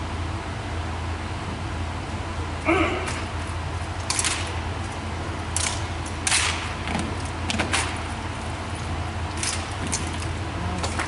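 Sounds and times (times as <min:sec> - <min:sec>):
rifles slapped and caught: 0:03.0 - 0:03.4, 0:04.0 - 0:08.2, 0:09.3 - 0:11.0.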